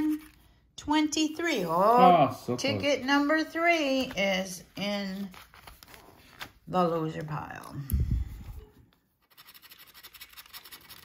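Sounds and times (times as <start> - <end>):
scratcher scraping lottery ticket: 9.2 - 11.0.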